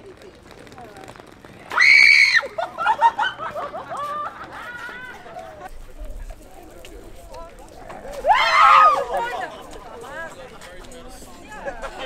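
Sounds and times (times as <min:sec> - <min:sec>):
high-pitched startled scream: 0:01.7 - 0:02.6
excited voices: 0:01.7 - 0:05.7, 0:07.3 - 0:12.0
people laughing: 0:02.3 - 0:05.8, 0:08.1 - 0:12.0.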